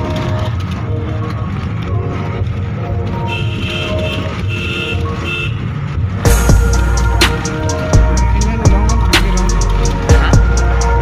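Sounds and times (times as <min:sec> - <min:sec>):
road rumble inside moving vehicle: 0:00.0 - 0:11.0.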